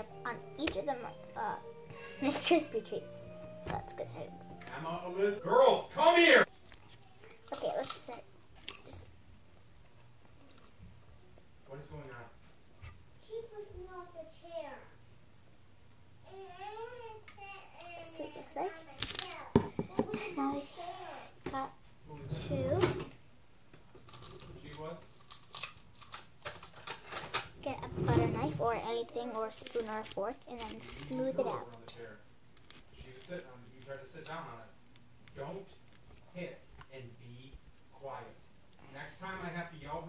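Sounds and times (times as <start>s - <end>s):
crisp rice treats crunching: 6.7s - 9.1s, 24.0s - 26.7s, 32.5s - 33.9s.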